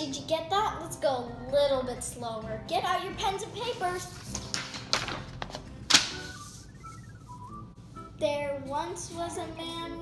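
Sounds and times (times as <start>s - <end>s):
faint high-pitched tune: 6.3s - 8.1s.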